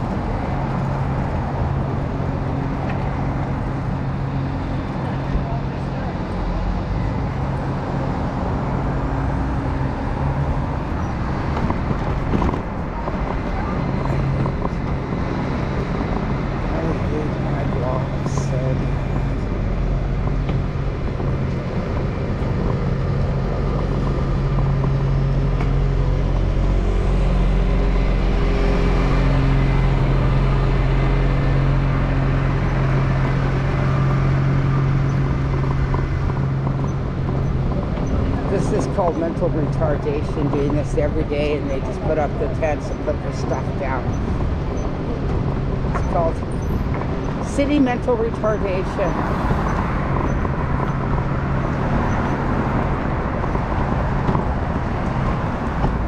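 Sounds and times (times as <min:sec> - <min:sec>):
traffic hum and rumble: 0:00.0 - 0:56.0.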